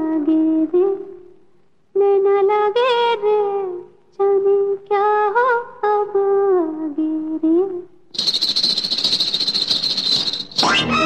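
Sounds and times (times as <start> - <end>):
ankle bells jingling: 8.2 - 11.0.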